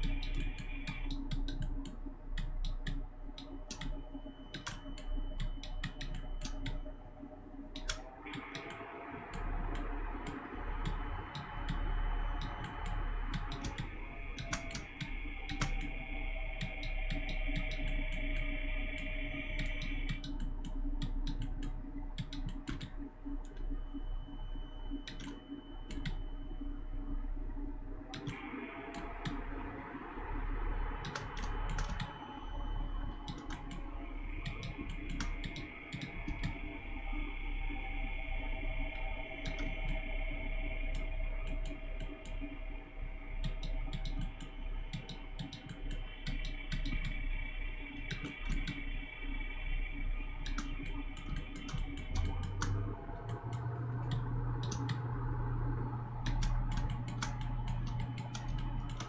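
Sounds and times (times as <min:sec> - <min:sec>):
computer mouse clicks: 0:00.0 - 0:06.9, 0:07.7 - 0:23.7, 0:25.0 - 0:26.2, 0:28.1 - 0:29.4, 0:31.0 - 0:32.3, 0:33.1 - 0:36.7, 0:38.9 - 0:40.2, 0:40.8 - 0:42.5, 0:43.4 - 0:47.2, 0:48.0 - 0:48.9, 0:50.4 - 0:55.1, 0:56.2 - 0:59.0
steady low hum: 0:00.0 - 0:59.0
keyboard key presses: 0:31.0 - 0:32.2, 0:56.2 - 0:59.0.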